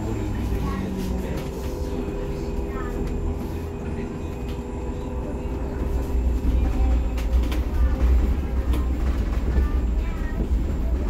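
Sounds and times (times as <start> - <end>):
bus road rumble: 0.0 - 11.0.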